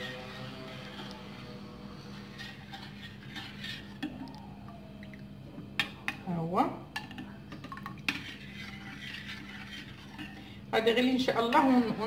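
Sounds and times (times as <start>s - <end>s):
spoon stirring in saucepan: 0.0s - 12.0s.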